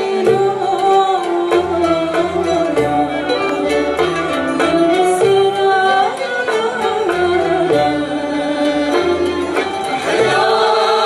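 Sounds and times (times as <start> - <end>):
ouds violins and mandolins playing: 0.0 - 11.0
voices singing a melody: 7.4 - 11.0.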